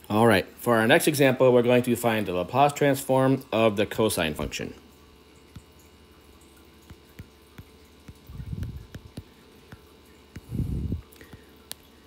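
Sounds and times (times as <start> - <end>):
faint steady hum: 0.0 - 12.0
stylus tapping on glass screen: 6.8 - 10.5.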